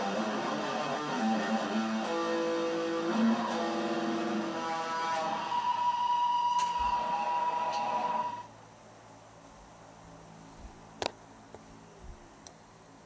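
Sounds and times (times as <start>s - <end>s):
electric guitar notes: 0.0s - 8.5s.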